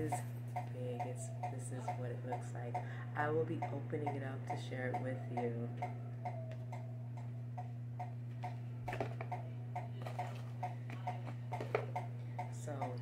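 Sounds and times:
clock ticking: 0.0 - 13.0
low constant hum: 0.0 - 13.0.

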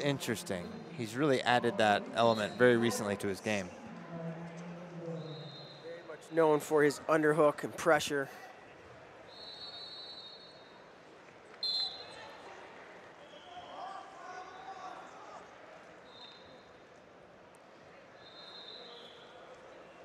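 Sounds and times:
high-pitched whistle tones: 5.2 - 6.0, 9.3 - 10.7, 18.2 - 19.4.

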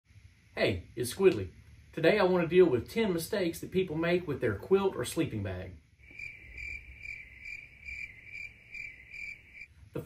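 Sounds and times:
cricket chirping: 5.8 - 10.0.

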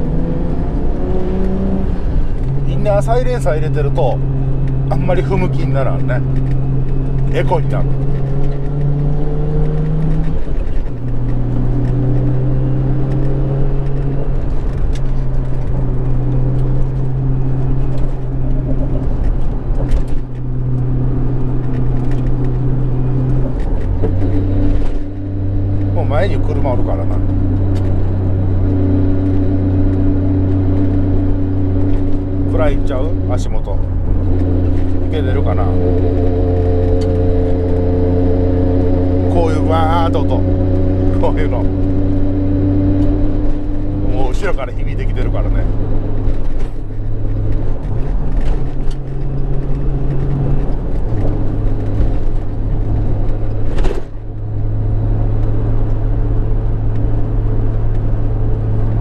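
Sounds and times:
car engine accelerating from inside: 0.0 - 59.0.

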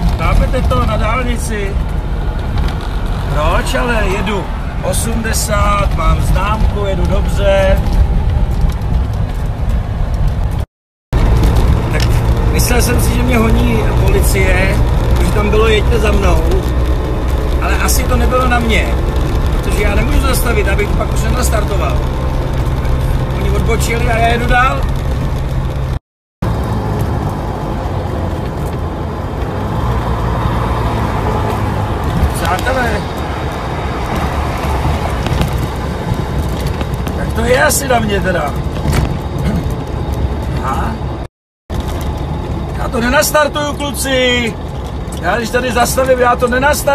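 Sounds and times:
car engine and road noise rumble: 0.0 - 46.9.

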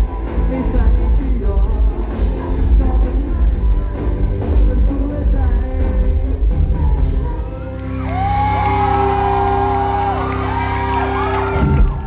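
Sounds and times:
fans shrieking and cheering: 7.2 - 12.0.

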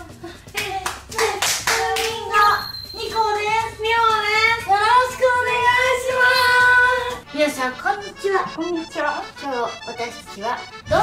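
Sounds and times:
hand claps: 0.5 - 2.3.

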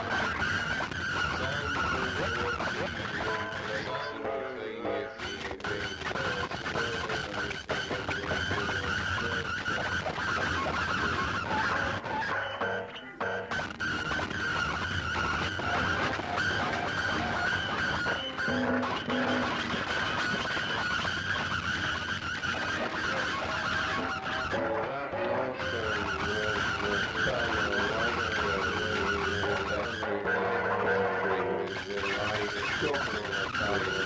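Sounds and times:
rough grinding noise texture: 13.5 - 34.0.

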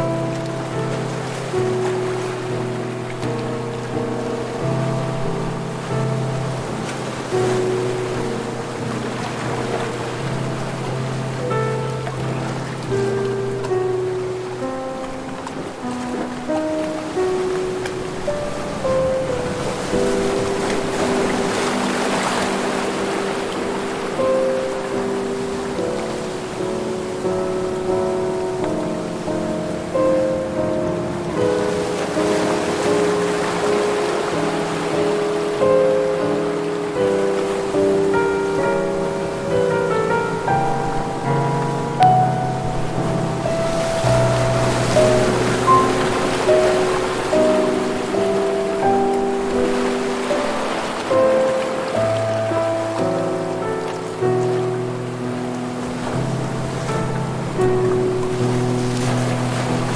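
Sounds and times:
ocean waves breaking: 0.0 - 59.9
soft slow instrumental music: 0.0 - 59.9.

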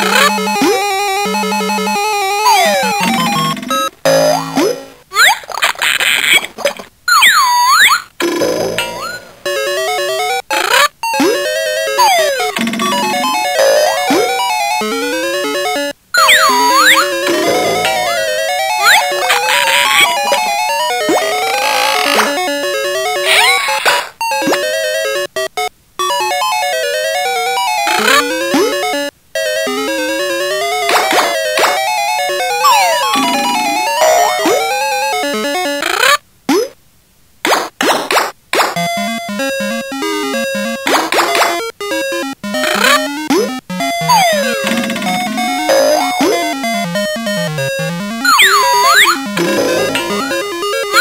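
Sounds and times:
buzzy synthesized toy melody: 0.0 - 4.6, 11.0 - 23.3, 26.2 - 30.8, 32.0 - 35.6, 41.8 - 51.0
synthesized beeping tune: 0.0 - 4.6, 12.0 - 14.4, 16.2 - 19.2, 32.6 - 34.6, 46.6 - 51.0.

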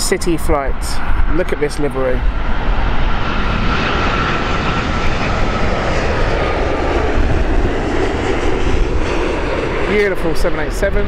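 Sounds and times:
jet engines rushing and rumbling: 0.0 - 11.0.

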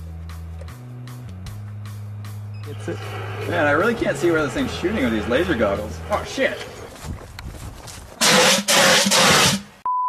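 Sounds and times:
rough rushing flame bursts: 8.2 - 9.7.

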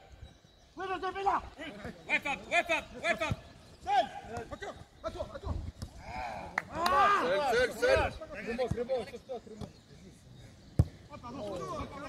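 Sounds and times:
men calling and shouting: 0.0 - 12.0.

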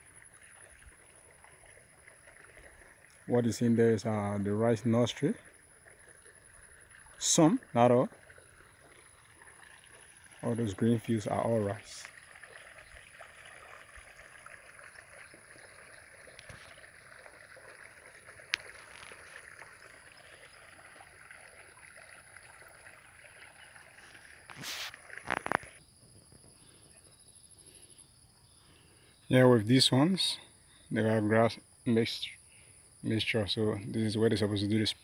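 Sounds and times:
crickets chirring: 0.0 - 35.0.

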